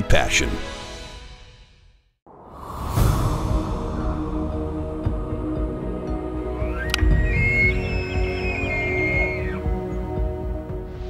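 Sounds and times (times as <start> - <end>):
theme music: 2.3 - 11.0
high whistling tone gliding: 2.5 - 10.0.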